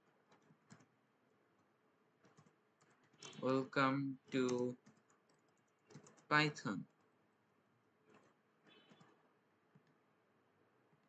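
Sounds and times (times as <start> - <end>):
typing on computer keyboard: 0.0 - 1.0, 2.2 - 3.5, 4.4 - 7.1, 8.1 - 10.0
man speaking: 3.4 - 4.8, 6.3 - 6.8.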